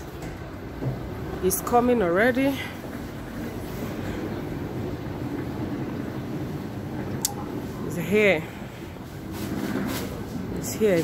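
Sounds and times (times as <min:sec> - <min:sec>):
lift mechanical running hum: 0:00.0 - 0:11.0.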